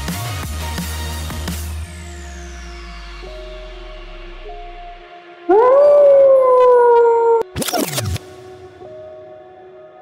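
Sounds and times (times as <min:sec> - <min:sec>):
wolf howl: 0:05.5 - 0:07.5.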